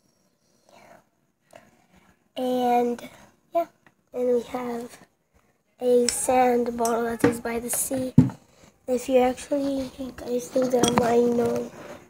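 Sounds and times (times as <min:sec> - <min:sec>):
faint breathy sound: 0:00.0 - 0:02.3.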